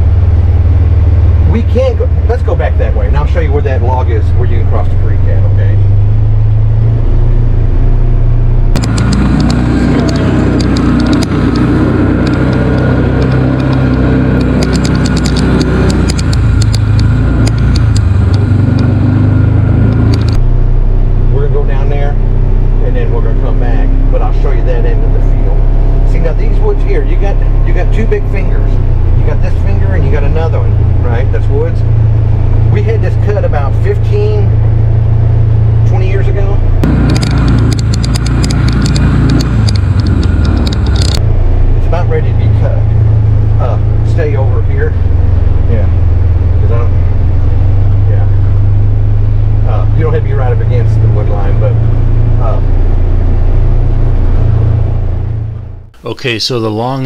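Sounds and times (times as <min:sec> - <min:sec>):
vehicle driving through tall grass: 0:00.0 - 0:55.9
utility vehicle engine running: 0:00.0 - 0:56.9.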